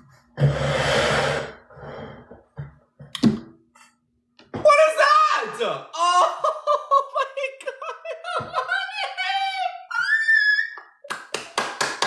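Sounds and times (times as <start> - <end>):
man squealing excitedly: 4.6 - 6.6, 8.4 - 11.0
quick hand clapping: 11.1 - 12.0.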